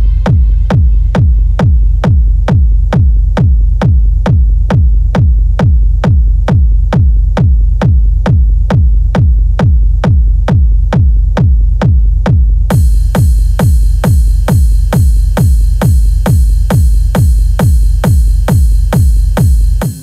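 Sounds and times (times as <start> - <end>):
low bass tone: 0.0 - 19.9
techno kick drum: 0.0 - 20.0.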